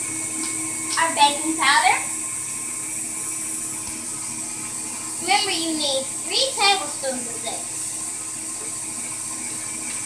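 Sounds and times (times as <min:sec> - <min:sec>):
faint humming tones: 0:00.0 - 0:10.0
high whine: 0:00.0 - 0:10.0.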